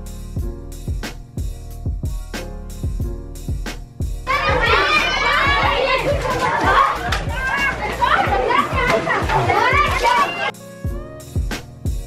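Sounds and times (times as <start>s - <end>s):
background music with steady beat: 0.0s - 12.0s
children shouting and squealing: 4.3s - 10.6s.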